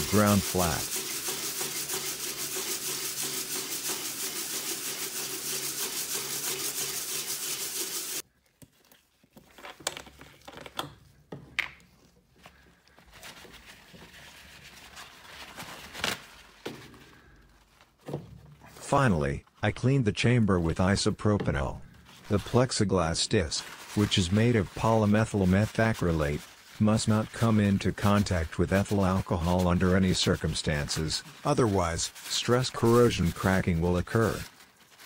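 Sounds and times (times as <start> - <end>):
plastic scraping on sandpaper: 0.0 - 8.2, 22.0 - 35.0.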